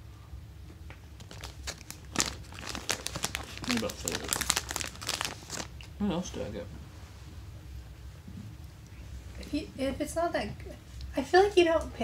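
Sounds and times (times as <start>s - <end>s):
wrapper crackling while eating: 1.1s - 6.0s.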